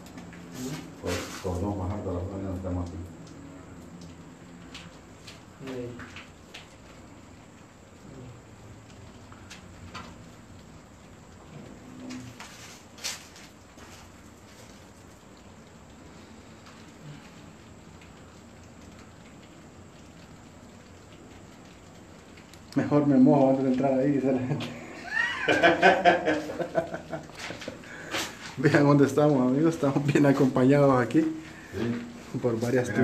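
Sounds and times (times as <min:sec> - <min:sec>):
steady rain falling: 0:00.0 - 0:33.0
water drips ticking: 0:00.0 - 0:33.0.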